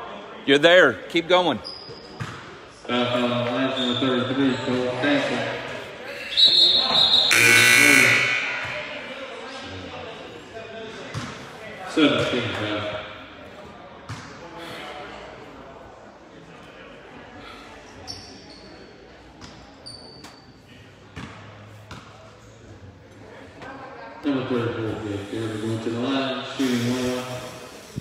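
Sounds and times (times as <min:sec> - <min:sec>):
scoreboard horn buzzing: 0:06.5 - 0:08.9.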